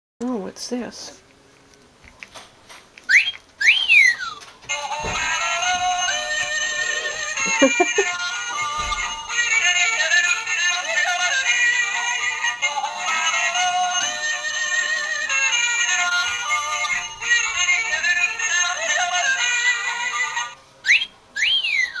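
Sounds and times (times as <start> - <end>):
toy playing yodelling song: 3.1 - 22.0.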